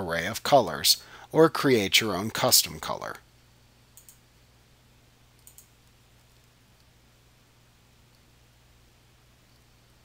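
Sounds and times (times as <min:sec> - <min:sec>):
computer mouse clicks: 0:04.0 - 0:04.2, 0:05.4 - 0:06.9.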